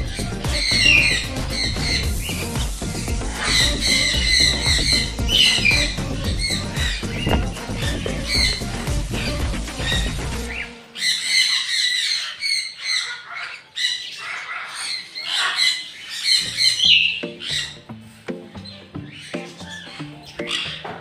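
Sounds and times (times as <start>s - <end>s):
music: 0.0s - 11.4s, 16.2s - 21.0s
parrots squawking and screeching: 0.0s - 21.0s.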